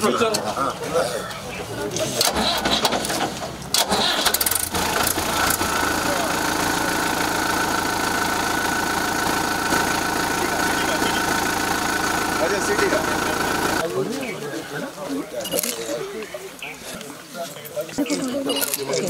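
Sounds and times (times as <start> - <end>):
tractor engine starting and idling: 2.2 - 13.8.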